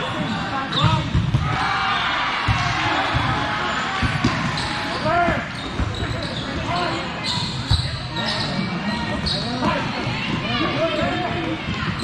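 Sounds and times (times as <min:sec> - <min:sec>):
volleyballs thudding and bouncing: 0:00.2 - 0:01.7, 0:02.4 - 0:06.3
sneaker squeaks on hardwood: 0:05.5 - 0:09.8.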